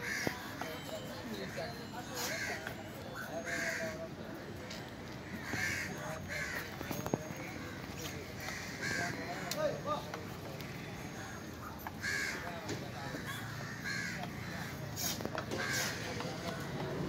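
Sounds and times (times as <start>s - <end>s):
crows cawing: 0.0s - 0.6s, 1.4s - 4.6s, 5.2s - 16.8s
faint background voices: 0.0s - 17.0s.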